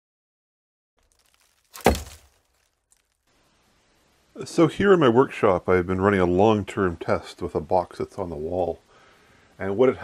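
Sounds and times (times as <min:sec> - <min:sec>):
faint room noise: 0:01.0 - 0:10.0
sharp thump: 0:01.8 - 0:02.3.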